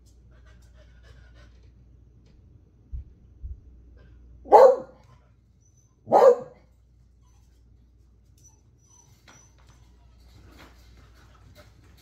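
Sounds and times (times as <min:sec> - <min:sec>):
dog barking: 0:04.5 - 0:05.1, 0:06.0 - 0:06.7.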